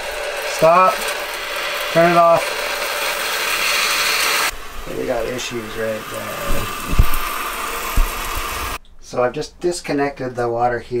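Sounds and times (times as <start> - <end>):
pressurised water hissing through pipes: 0.0 - 8.8.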